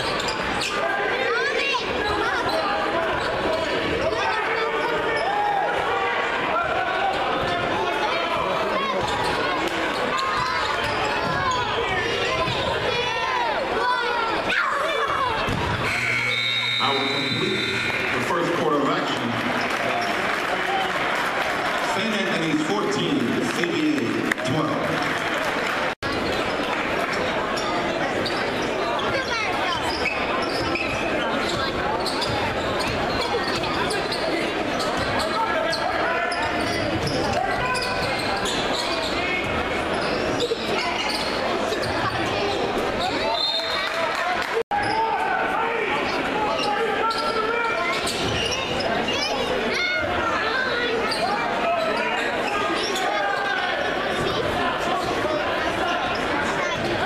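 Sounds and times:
spectators' voices echoing: 0.0s - 57.0s.

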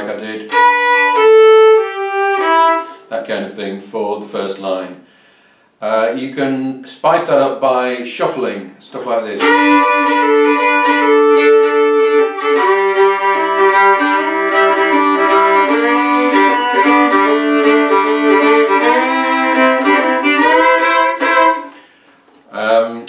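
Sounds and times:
fiddle playing double stops: 0.5s - 3.0s, 9.4s - 21.8s.

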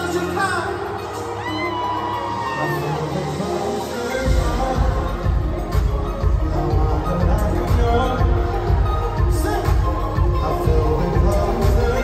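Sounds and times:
live pop concert music: 0.0s - 12.0s.

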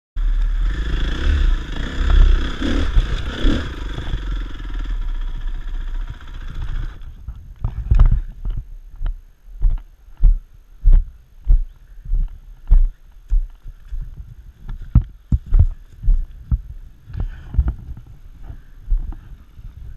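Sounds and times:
dirt bike engine running: 0.2s - 8.6s.

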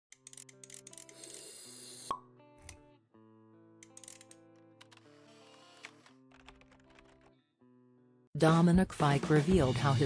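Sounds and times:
soft background music: 0.1s - 10.0s.

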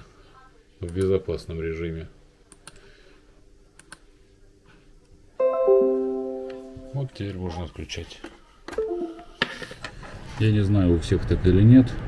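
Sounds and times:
falling two-note tone: 5.4s - 7.2s, 8.8s - 9.4s.

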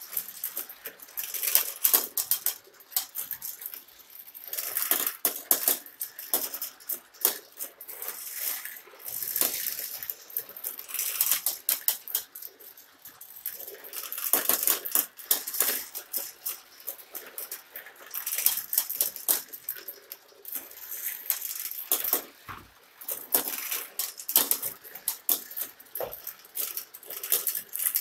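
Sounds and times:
marbles clattering through plastic track: 0.0s - 28.0s.

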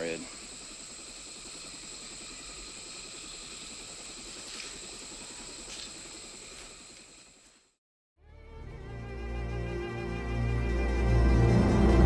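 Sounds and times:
thin steady high tone: 0.0s - 7.1s
jungle ambience hum and hiss: 0.0s - 7.8s, 8.5s - 12.0s.

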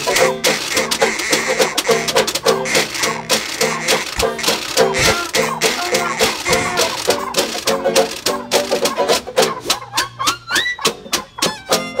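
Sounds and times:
trumpet: 0.0s - 7.8s
banjo: 0.0s - 12.0s
washboard beat: 0.0s - 12.0s.

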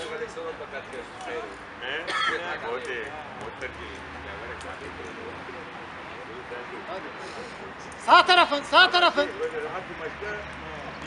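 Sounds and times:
men calling and talking: 0.0s - 11.0s.

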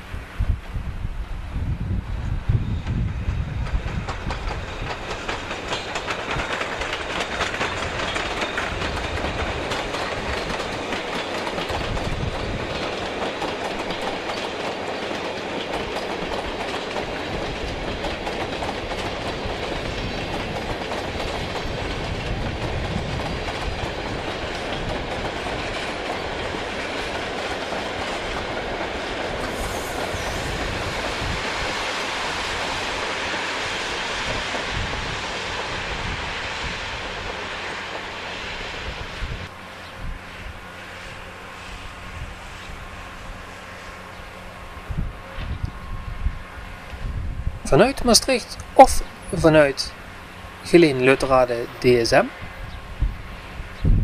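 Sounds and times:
train rolling past: 0.0s - 54.0s
wheels clicking over track: 3.6s - 33.4s.

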